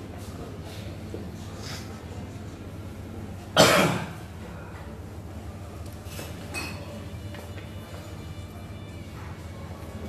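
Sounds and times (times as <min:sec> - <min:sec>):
person coughing: 0:03.6 - 0:04.2.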